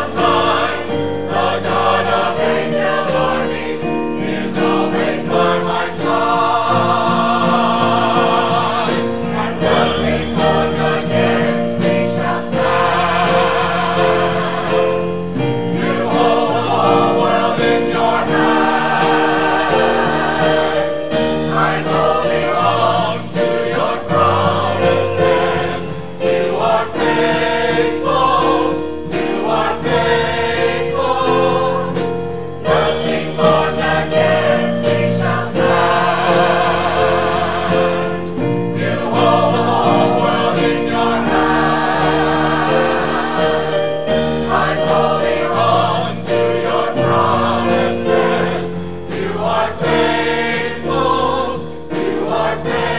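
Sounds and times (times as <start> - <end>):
choir singing in harmony: 0.0 - 52.9.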